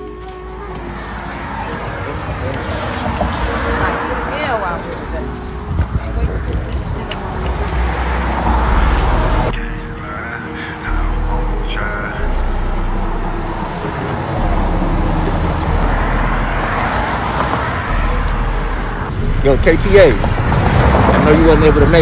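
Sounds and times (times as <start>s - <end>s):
road traffic rumble: 0.0s - 22.0s.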